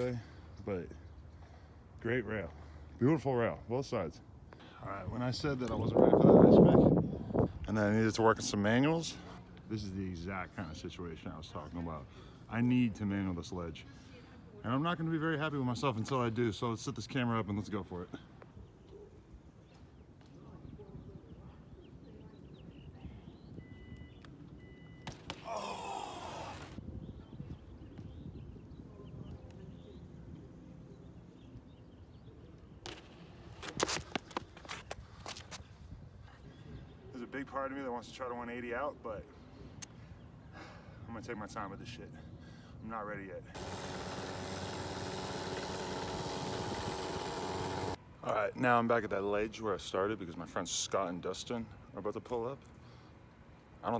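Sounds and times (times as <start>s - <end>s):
small engine running steadily: 43.6s - 48.0s.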